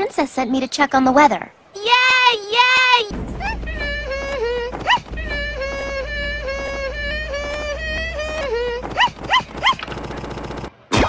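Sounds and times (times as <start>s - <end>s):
cartoon yapping calls: 1.8s - 9.8s.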